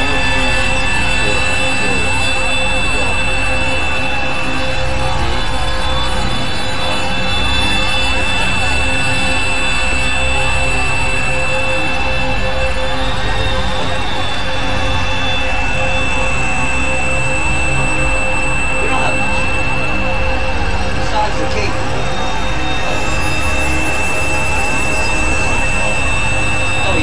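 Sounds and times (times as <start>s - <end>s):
synthesizer noise drone: 0.0s - 27.0s
held synth tones: 15.1s - 27.0s.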